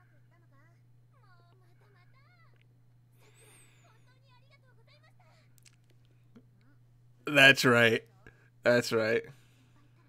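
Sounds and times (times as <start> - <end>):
faint high-pitched woman's voice: 0.0 - 2.6.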